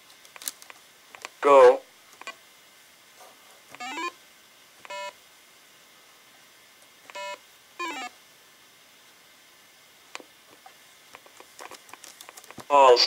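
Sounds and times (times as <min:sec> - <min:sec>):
electronic device beeps: 0:03.8 - 0:04.2, 0:04.9 - 0:05.2, 0:07.1 - 0:08.1.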